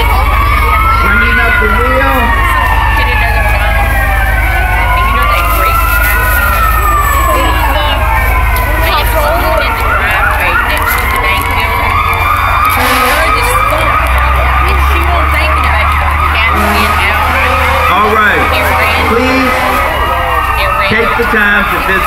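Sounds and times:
emergency vehicle sirens wailing: 0.0s - 22.0s
siren fast yelp: 0.0s - 22.0s.

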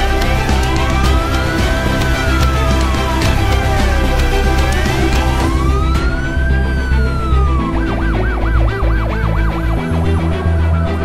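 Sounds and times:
background music with low tones: 0.0s - 11.0s
emergency siren wailing and yelping: 0.0s - 11.0s.

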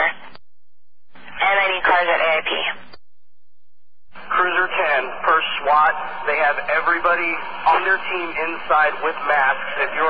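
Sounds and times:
radio voice transmissions: 0.0s - 0.4s, 1.2s - 3.0s, 4.2s - 10.0s.

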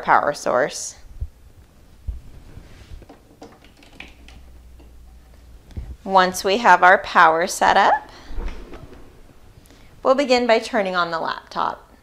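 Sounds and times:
low hum: 7.5s - 10.4s.

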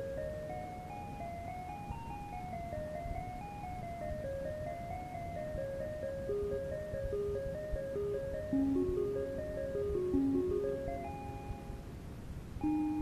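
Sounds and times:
electronic keyboard melody: 0.0s - 12.0s, 12.6s - 13.0s
tape rumble and hiss: 0.0s - 13.0s.

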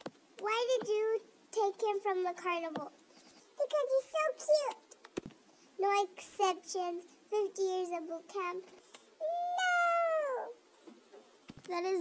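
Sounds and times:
high cartoon voice crying: 9.2s - 10.6s.

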